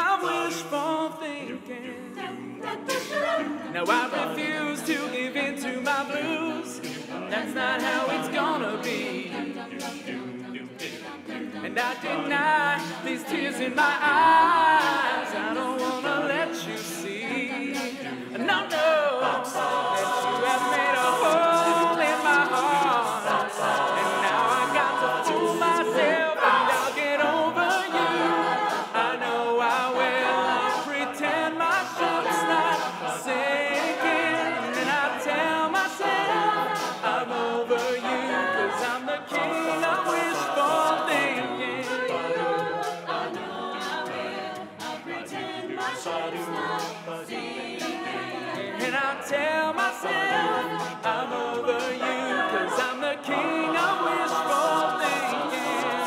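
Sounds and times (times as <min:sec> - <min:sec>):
a cappella group singing harmonies: 0:00.0 - 0:56.0
sharp percussive clicks: 0:18.7 - 0:26.0.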